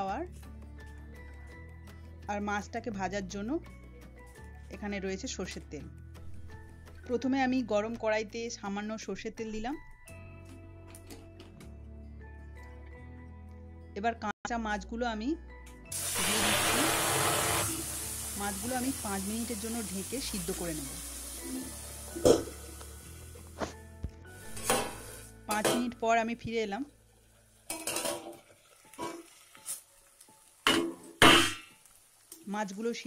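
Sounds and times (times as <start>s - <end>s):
fish sizzling in hot oil: 15.9s - 23.6s, 27.0s - 33.0s
steel pot lid clanking: 22.1s - 22.6s, 27.7s - 29.3s.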